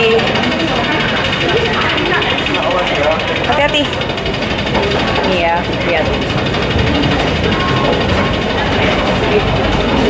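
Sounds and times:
escalator rattling and rumbling: 0:00.0 - 0:10.0.

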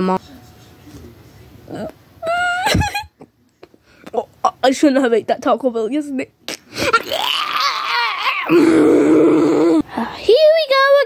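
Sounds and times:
person groaning: 0:06.9 - 0:10.0
person wavering vocal sound: 0:06.9 - 0:10.0.

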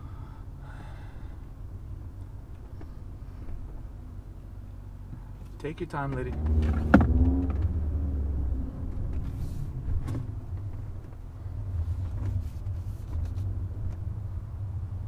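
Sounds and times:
car engine low rumble: 0:00.0 - 0:15.0.

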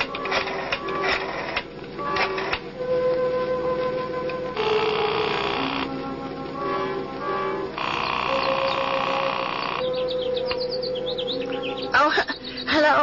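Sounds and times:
held music tones: 0:00.0 - 0:13.0
small birds chirping: 0:06.7 - 0:13.0.

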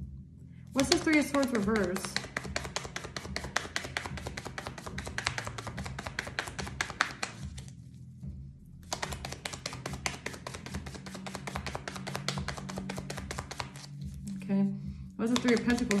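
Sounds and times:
cards being shuffled: 0:00.8 - 0:08.0, 0:08.8 - 0:14.3, 0:15.3 - 0:16.0.

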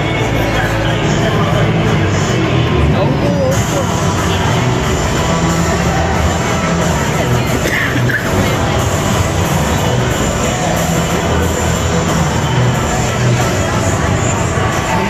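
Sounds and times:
murmur of large crowd: 0:00.0 - 0:15.0
music over stadium speakers: 0:00.0 - 0:15.0.

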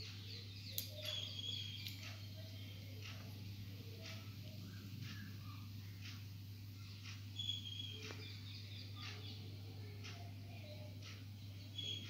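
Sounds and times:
distant bird chirps: 0:00.0 - 0:12.0
small clicks: 0:00.7 - 0:02.2.

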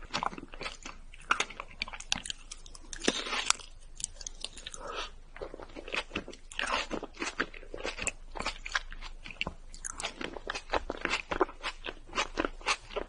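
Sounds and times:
close chewing with mouth clicks: 0:00.0 - 0:13.0.

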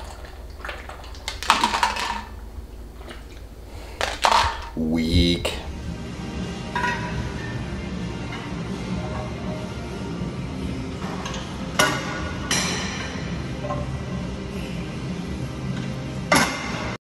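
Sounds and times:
background music: 0:04.2 - 0:17.0.

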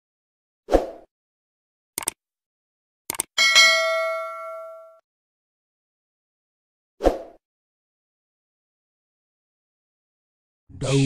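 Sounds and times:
short sharp clicks: 0:02.0 - 0:02.2, 0:03.1 - 0:03.3
bell-like ding ringing: 0:03.4 - 0:05.0.

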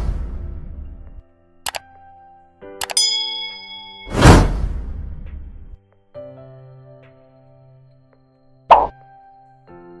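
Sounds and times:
loud pop sound effect: 0:08.7 - 0:09.0.

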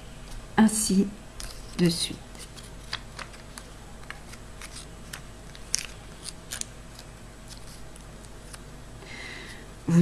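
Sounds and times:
paper crinkling: 0:01.4 - 0:08.7.

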